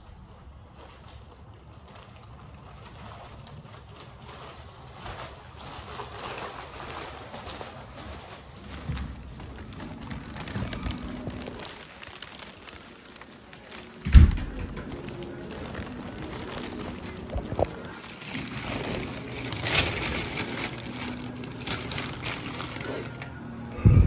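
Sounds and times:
plastic bags rustling: 0:00.2 - 0:23.6
wind rumble on microphone: 0:23.8 - 0:24.0.

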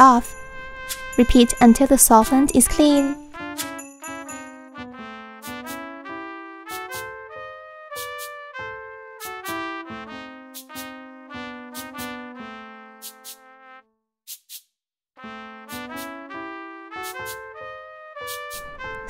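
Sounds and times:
instrumental background music: 0:00.0 - 0:14.5, 0:15.2 - 0:19.0.

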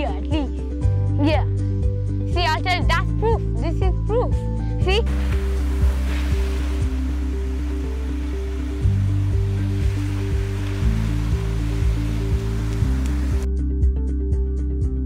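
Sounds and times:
ocean surf breaking on beach: 0:05.1 - 0:13.5.

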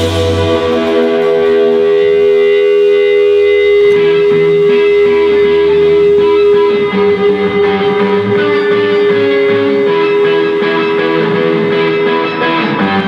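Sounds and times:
plucked guitar line: 0:00.0 - 0:13.0
sustained electric guitar note: 0:00.0 - 0:13.0.

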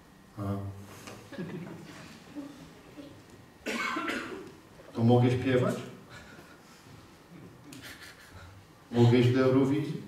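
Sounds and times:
person coughing: 0:03.6 - 0:04.5.

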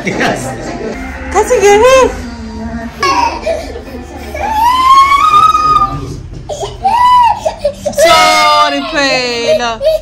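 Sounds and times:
toddler crying: 0:03.0 - 0:10.0
toddler sobbing: 0:03.0 - 0:10.0.

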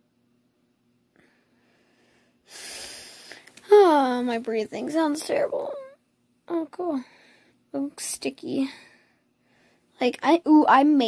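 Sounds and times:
raspy congested nose breath: 0:01.6 - 0:03.5
girl talking: 0:03.6 - 0:07.1, 0:07.7 - 0:08.9, 0:10.0 - 0:11.0.

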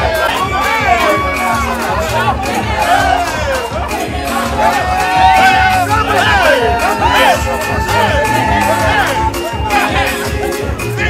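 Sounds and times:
crowd shouting and cheering: 0:00.0 - 0:11.0
dance music: 0:00.0 - 0:11.0.

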